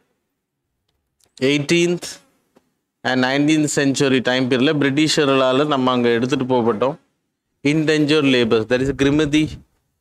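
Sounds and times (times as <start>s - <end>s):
man speaking: 1.4s - 2.3s, 3.0s - 9.7s.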